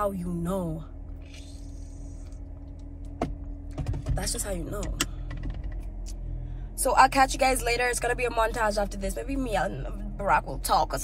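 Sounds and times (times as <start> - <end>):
low car cabin hum: 0.0 - 11.0.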